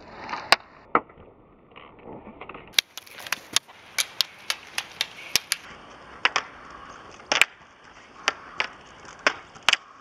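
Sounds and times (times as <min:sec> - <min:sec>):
ski pole tips clicking on asphalt: 0:02.7 - 0:10.0
roller ski wheels hissing on road: 0:02.8 - 0:10.0.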